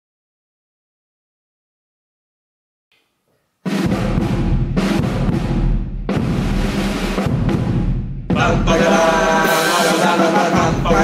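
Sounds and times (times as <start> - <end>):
drum kit: 3.6 - 11.0
bass drum rumble: 3.8 - 8.9.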